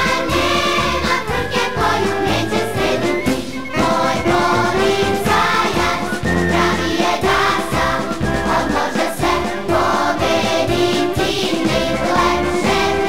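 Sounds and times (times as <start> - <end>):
choir singing: 0.0 - 13.0
marching band playing: 0.0 - 13.0.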